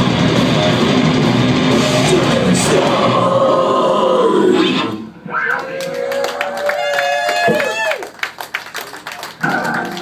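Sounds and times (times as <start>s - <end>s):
distorted electric guitars sustained chord: 0.0s - 4.0s.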